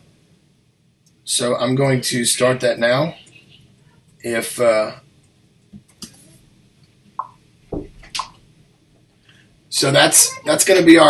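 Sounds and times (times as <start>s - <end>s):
wet clicks or pops: 7.2s - 7.4s, 8.0s - 8.4s.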